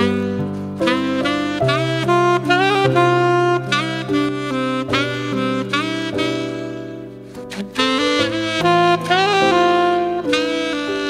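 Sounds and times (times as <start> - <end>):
saxophone melody: 0.0 - 11.0.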